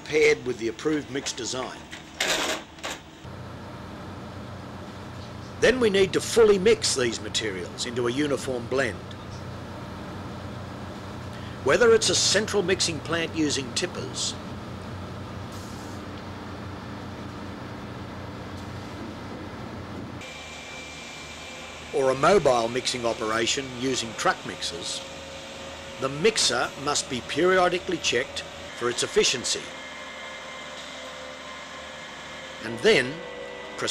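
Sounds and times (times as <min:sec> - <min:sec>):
concrete mixer humming: 0:03.3 - 0:33.9
machinery drone: 0:03.3 - 0:33.9.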